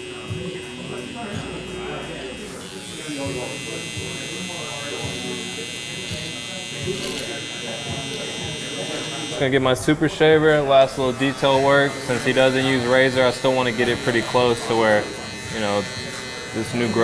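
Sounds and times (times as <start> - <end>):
electric hair trimmer buzzing: 0.1 - 9.8, 10.8 - 17.0.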